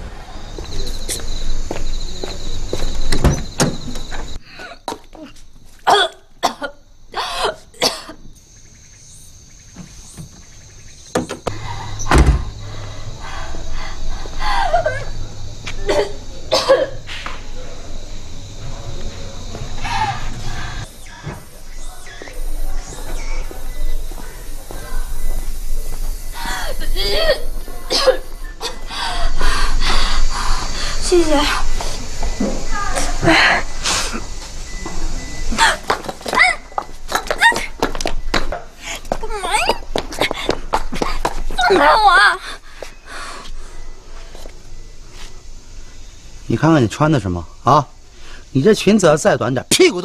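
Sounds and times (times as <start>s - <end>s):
woman coughing: 5.9s - 8.2s, 15.8s - 17.0s, 26.8s - 28.9s, 39.5s - 40.0s
loud dull thump: 11.2s - 12.5s.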